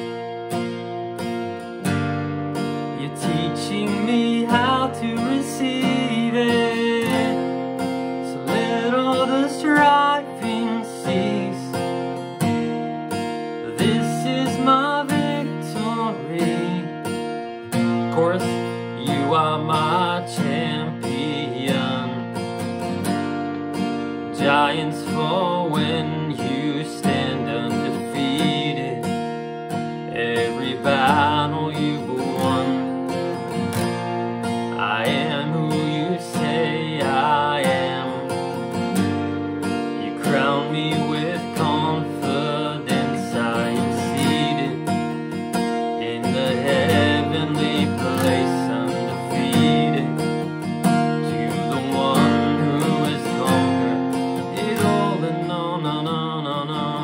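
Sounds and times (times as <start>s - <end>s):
acoustic guitar strumming: 0.0s - 57.0s
man singing: 2.6s - 12.4s, 13.5s - 57.0s.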